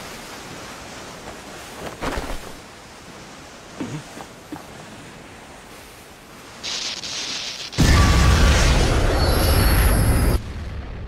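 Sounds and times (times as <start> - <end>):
waves and water: 0.0 - 10.7.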